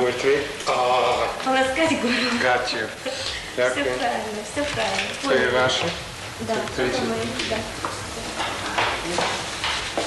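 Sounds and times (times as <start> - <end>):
hissing background noise: 0.0 - 10.0.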